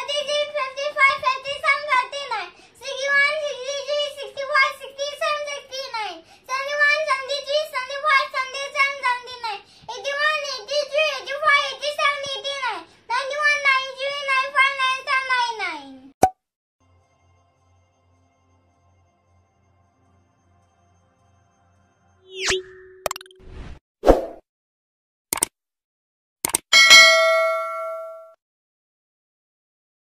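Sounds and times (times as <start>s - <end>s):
young boy reciting in sing-song voice: 0.0s - 16.1s
sharp click: 25.3s - 25.6s, 26.4s - 26.7s
struck bell ding: 26.8s - 28.4s.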